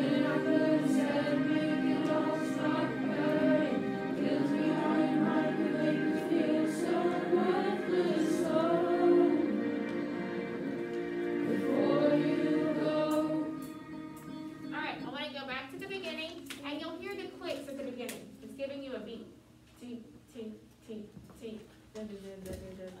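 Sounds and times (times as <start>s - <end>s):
choir singing: 0.0s - 14.7s.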